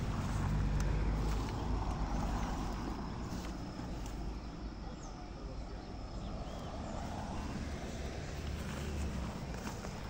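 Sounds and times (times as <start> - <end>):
leaves rustling through brush: 0.0 - 4.6, 7.0 - 10.0.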